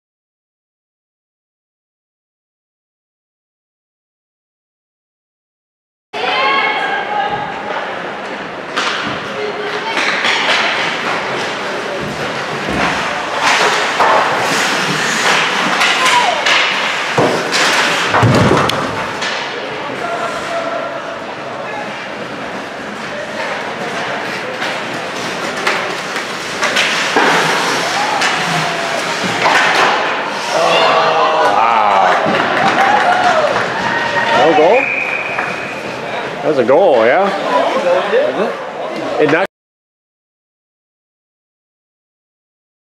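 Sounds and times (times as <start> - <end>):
hockey sticks and puck knocking: 8.7 - 19.5, 23.8 - 30.6
indistinct shouting: 30.5 - 34.8.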